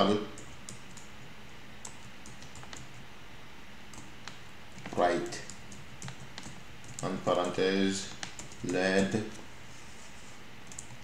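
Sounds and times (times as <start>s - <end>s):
keyboard typing: 0.3s - 1.2s, 1.8s - 3.0s, 3.9s - 9.4s, 10.6s - 11.0s.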